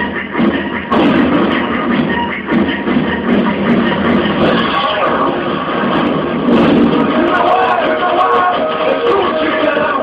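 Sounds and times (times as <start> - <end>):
dance music over loudspeakers: 0.0 - 10.0
voices: 7.1 - 10.0.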